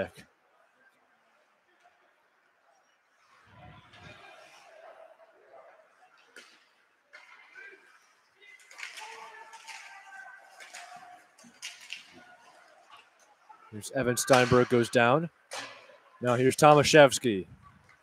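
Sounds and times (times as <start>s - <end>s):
hockey sticks and puck clacking: 6.1s - 17.2s.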